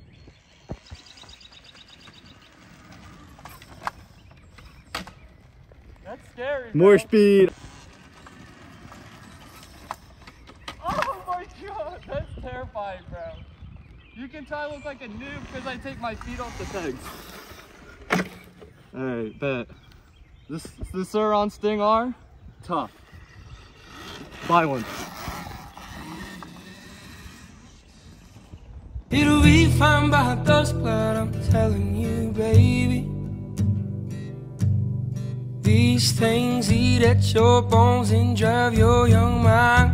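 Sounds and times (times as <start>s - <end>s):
electric dirt bike riding on grass: 0.1s - 10.8s, 13.8s - 19.0s, 22.7s - 29.1s.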